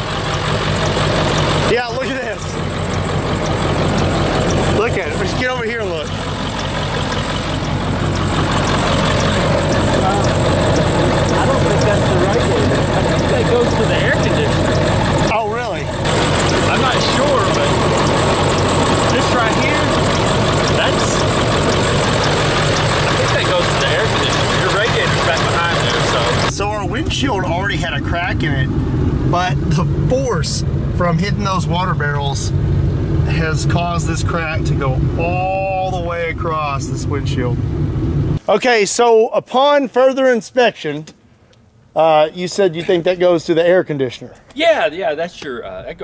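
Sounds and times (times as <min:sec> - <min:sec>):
diesel pickup idling: 0:00.0 - 0:38.4.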